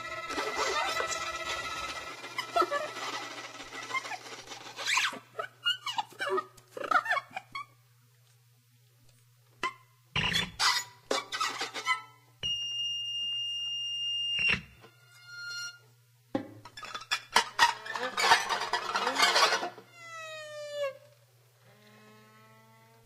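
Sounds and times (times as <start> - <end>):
high pitched held tone: 0.0 - 4.3
steady low hum: 0.0 - 5.6.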